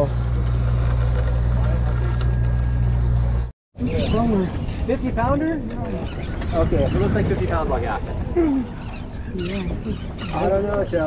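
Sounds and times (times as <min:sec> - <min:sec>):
boat engine droning: 0:00.0 - 0:04.2.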